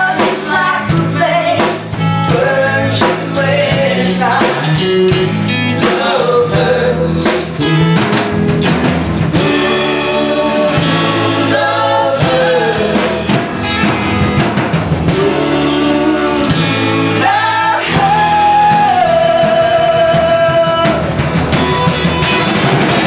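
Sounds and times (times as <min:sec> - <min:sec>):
person singing: 0:00.0 - 0:07.6, 0:15.1 - 0:22.8
drums: 0:00.0 - 0:23.0
guitar: 0:00.0 - 0:23.0.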